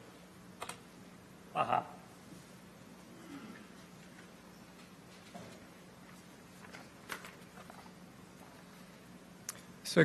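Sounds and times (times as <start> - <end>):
faint sound system hum: 0.0 - 10.0
papers and folder rustling: 5.1 - 7.9.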